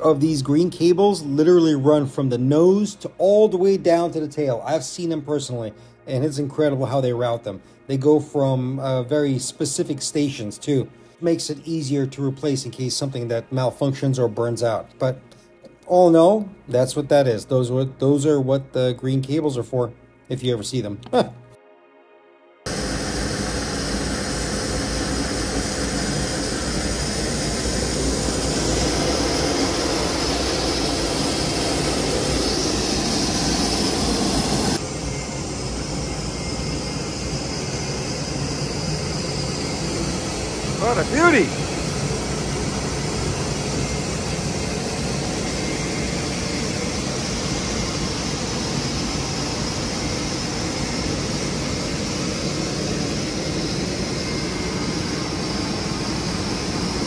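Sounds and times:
jet aircraft noise: 22.7s - 57.0s.

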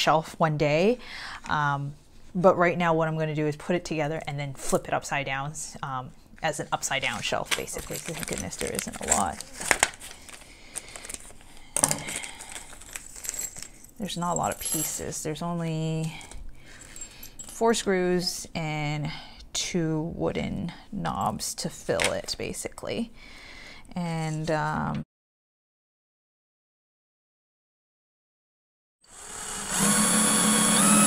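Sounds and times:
person speaking: 3.8s - 9.7s
scissors snipping plastic bag: 7.5s - 11.3s.

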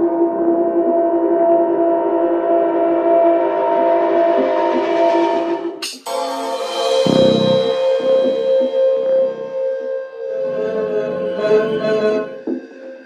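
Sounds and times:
synthesizer drone chord: 2.5s - 13.0s.

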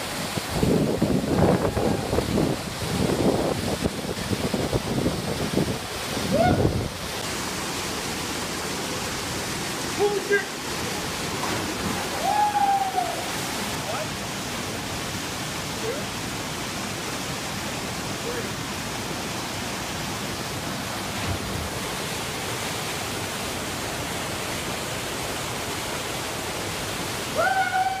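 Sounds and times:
waterfall rushing into pool: 0.0s - 28.0s.

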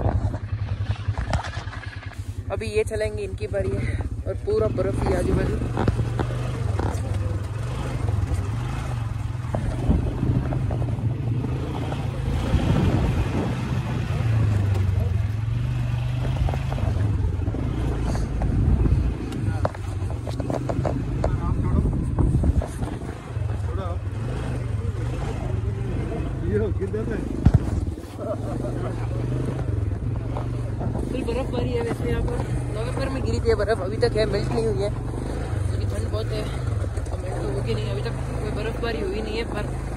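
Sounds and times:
small vehicle engine running: 0.0s - 39.9s.

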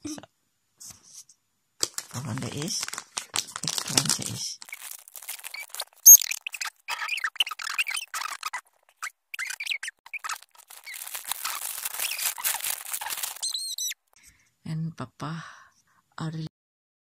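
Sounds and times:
paper and box crinkling: 1.8s - 8.6s, 9.4s - 14.0s
sharp high squeaks: 4.7s - 14.0s.

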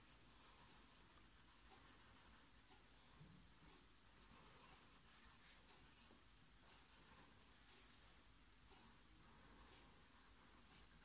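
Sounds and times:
pencil scratching on paper: 0.0s - 3.2s, 4.2s - 11.0s.

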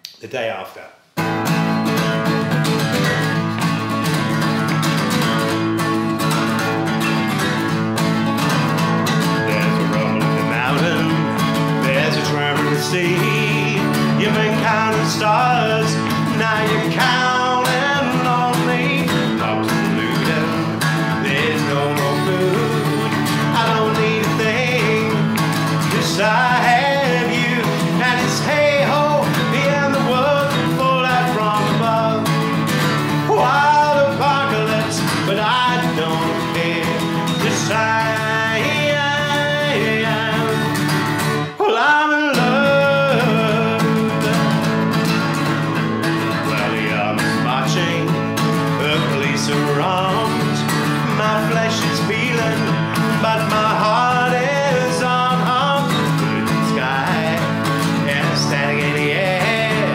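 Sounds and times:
acoustic guitar strumming: 1.2s - 59.9s
man singing: 2.8s - 59.9s.

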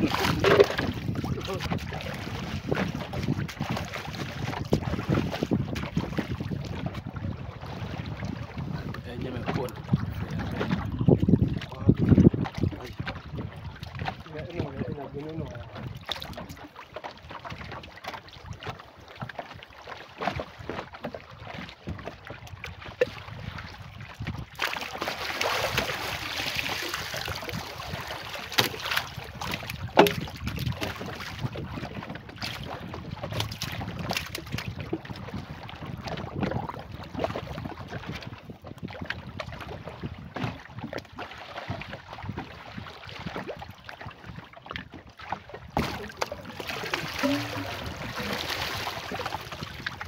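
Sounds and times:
wind buffeting microphone: 0.0s - 16.5s, 21.6s - 24.7s, 25.5s - 44.9s, 45.6s - 50.0s
bamboo tube knocking on wood: 30.0s - 30.3s.

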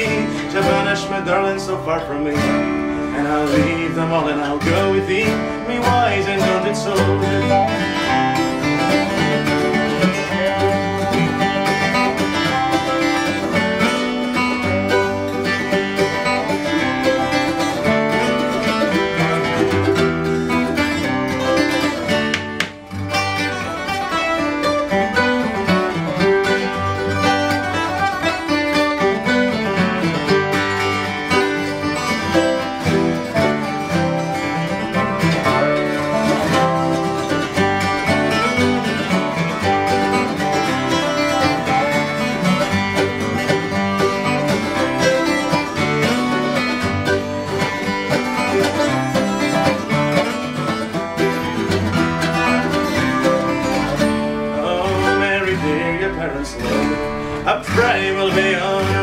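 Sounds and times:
lap slide guitar: 0.0s - 59.0s
picked lead guitar lines: 0.0s - 59.0s
strummed acoustic guitars: 0.0s - 59.0s.

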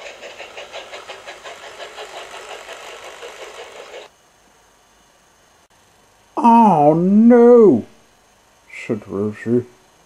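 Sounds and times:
steam locomotive chuffing: 0.0s - 4.1s.

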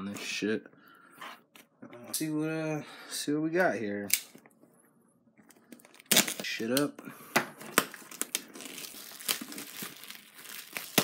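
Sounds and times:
shrink wrap crinkling: 5.5s - 6.7s, 7.6s - 11.0s.

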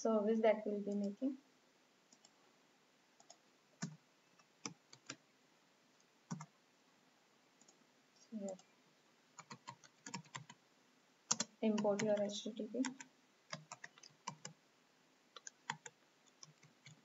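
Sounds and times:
keyboard keystrokes: 11.3s - 12.2s, 12.8s - 14.6s.

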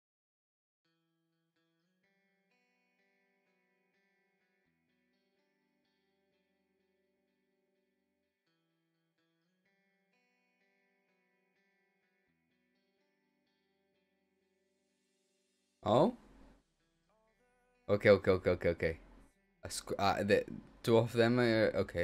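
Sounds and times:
faint plucked background music: 15.8s - 16.1s, 17.2s - 22.0s.

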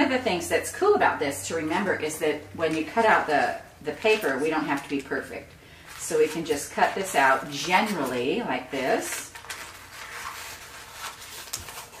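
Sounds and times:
paper rustling: 3.9s - 12.0s.

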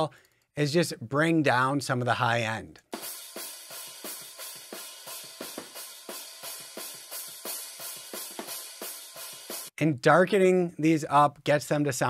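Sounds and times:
drum kit playing fast beat: 2.8s - 9.8s
cymbals: 2.9s - 9.8s.

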